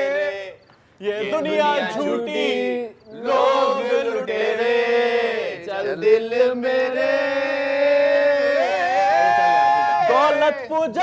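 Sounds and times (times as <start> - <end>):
men singing slow melody: 0.0 - 10.2.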